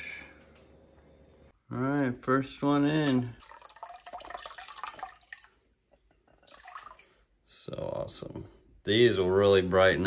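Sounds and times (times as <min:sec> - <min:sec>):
water splashing into aquarium: 0:03.0 - 0:05.6, 0:06.4 - 0:07.1
water dripping: 0:03.0 - 0:07.2.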